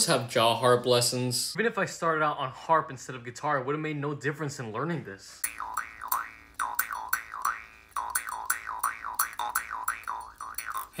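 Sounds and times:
jaw harp twanging: 5.4 - 11.0.

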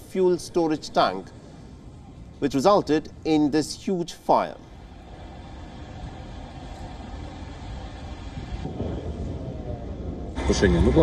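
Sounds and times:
low steady fire rumble: 4.6 - 11.0.

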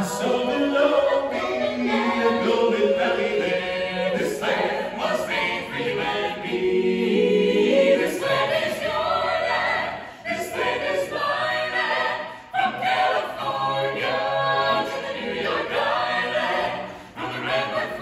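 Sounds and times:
choir singing in harmony: 0.0 - 18.0.

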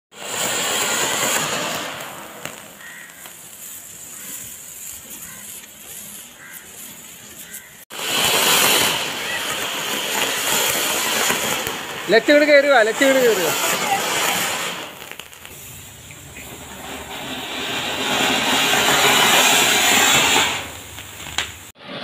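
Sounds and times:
fireworks hissing: 0.1 - 22.0.

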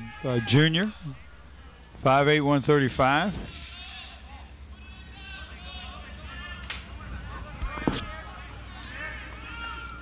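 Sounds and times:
distant voices calling out: 3.3 - 10.0.

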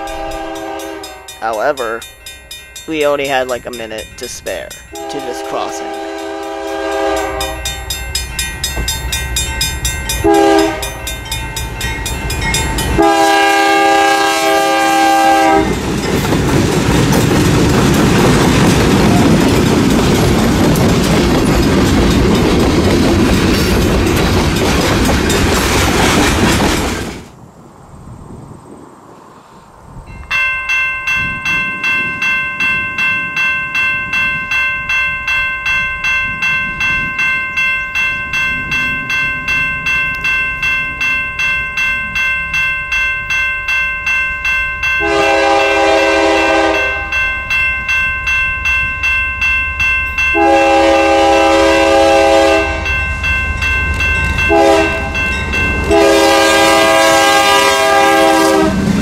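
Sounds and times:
locomotive air horn: 0.0 - 1.3, 5.0 - 7.8, 10.2 - 11.0, 13.0 - 15.8, 45.0 - 47.2, 50.4 - 52.9, 54.5 - 55.2, 55.9 - 58.8
crossing bell ringing: 0.0 - 25.7, 30.1 - 58.7
train rumble: 0.0 - 59.0.

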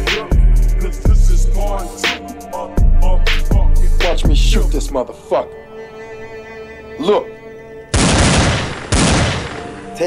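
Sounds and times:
phonk beat: 0.0 - 4.7
rapid gunshot bursts: 8.0 - 9.8.

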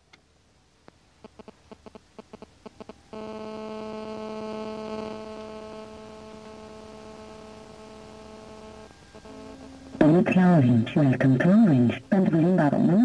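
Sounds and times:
steady buzzy tone: 0.8 - 13.0.

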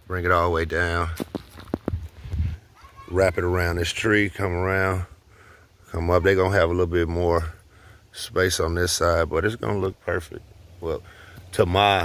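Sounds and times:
footsteps on dry ground: 1.0 - 2.6.

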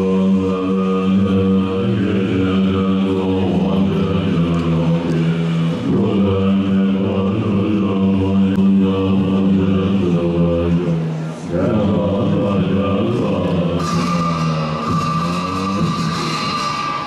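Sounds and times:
monks chanting in low voices: 0.0 - 17.0.

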